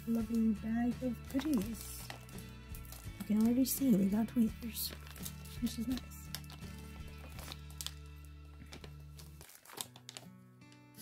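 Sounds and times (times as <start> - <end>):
plastic bag crinkling: 0.0 - 11.0
quiet background music: 0.0 - 11.0.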